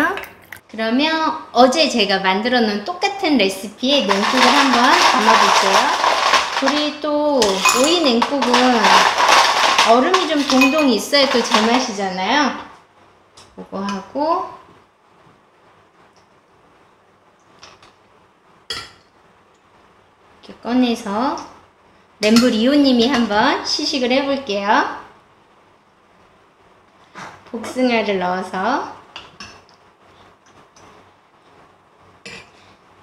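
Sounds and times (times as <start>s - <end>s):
utensil clinking against glass: 7.4s - 11.8s
glass bowl clinks: 7.6s - 8.0s, 10.4s - 11.1s.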